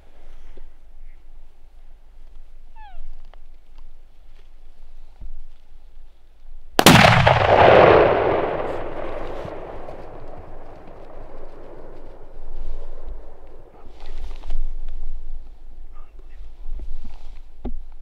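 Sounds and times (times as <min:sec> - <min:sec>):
rifle shot with rolling echo: 0:06.8 - 0:13.8.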